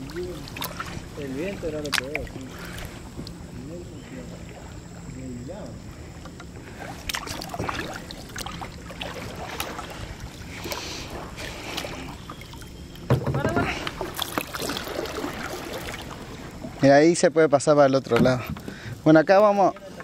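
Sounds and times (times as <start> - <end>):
paddle strokes in water: 0.0 - 5.0, 5.6 - 17.2, 17.8 - 20.0.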